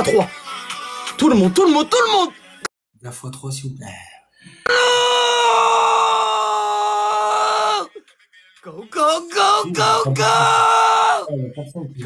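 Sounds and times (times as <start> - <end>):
man screaming: 4.7 - 8.0, 8.9 - 11.3.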